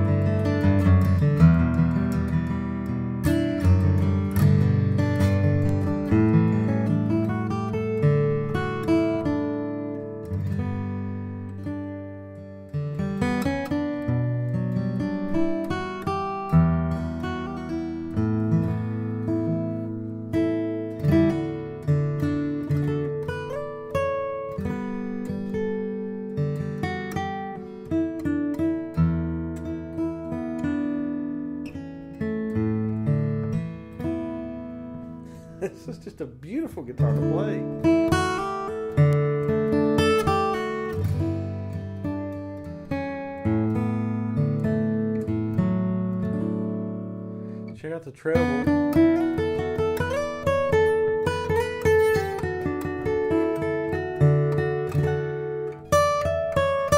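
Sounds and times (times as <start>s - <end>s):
acoustic guitar strumming and picking: 0.0s - 56.9s.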